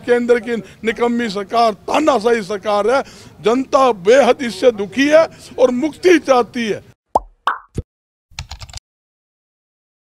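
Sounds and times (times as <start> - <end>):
rapid clicks: 8.4 - 8.8.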